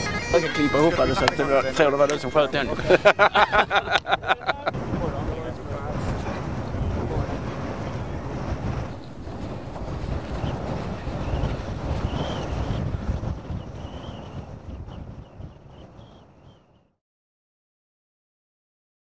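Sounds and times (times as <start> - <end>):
wind buffeting microphone: 0.0 - 16.9.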